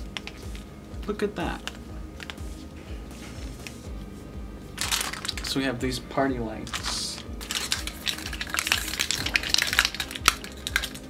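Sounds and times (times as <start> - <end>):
battery box cover cracking open: 6.7 - 11.0.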